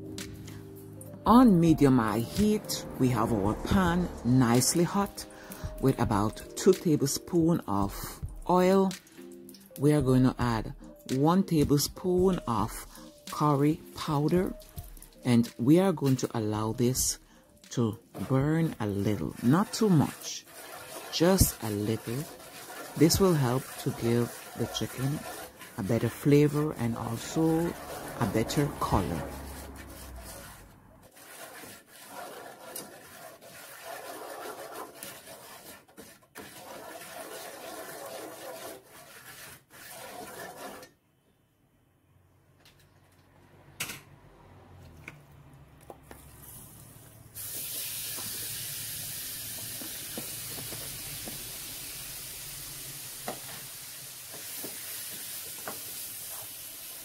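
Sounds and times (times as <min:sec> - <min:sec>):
spoon stirring and scraping pan: 0:11.8 - 0:41.0, 0:53.2 - 0:57.0
chicken sizzling in oil: 0:47.4 - 0:57.0
spices frying in hot oil: 0:47.4 - 0:57.0.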